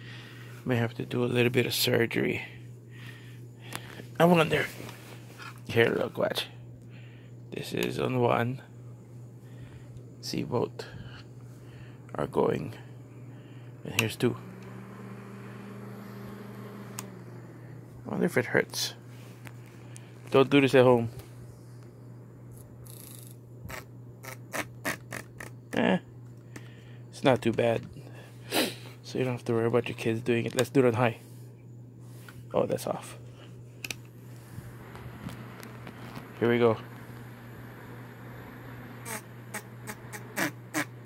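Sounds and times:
desk fan motor hum: 0.0 - 41.0.

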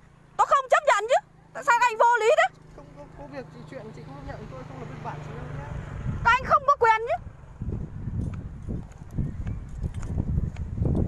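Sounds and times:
footsteps on asphalt: 7.6 - 11.0.

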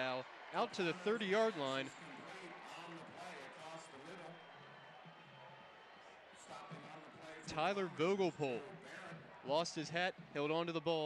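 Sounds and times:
faint background voices: 0.0 - 10.1.

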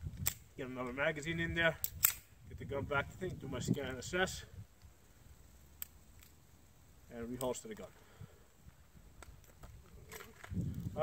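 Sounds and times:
faint pistol clicks: 1.8 - 2.3.

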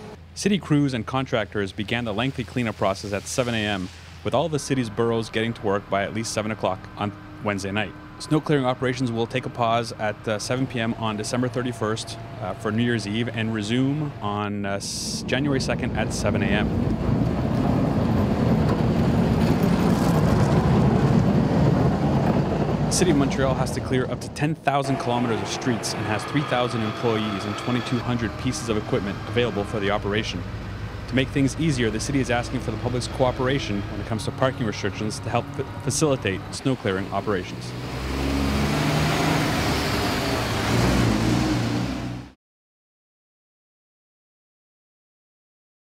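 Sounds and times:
diesel engine low rumble: 0.0 - 42.4
tyres on slushy road: 0.0 - 42.4
passing car traffic: 1.9 - 42.4.

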